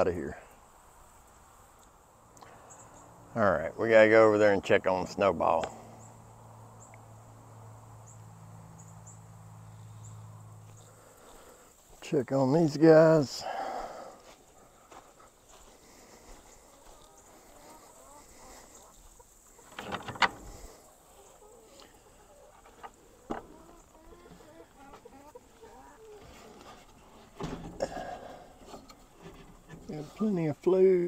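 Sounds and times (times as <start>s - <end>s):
chickens clucking softly: 16.2s - 27.0s.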